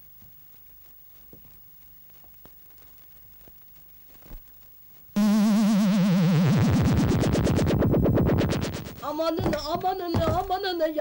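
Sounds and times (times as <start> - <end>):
warbling electronic tone: 5.2 - 9.0
fast electronic pulses: 5.2 - 9.2.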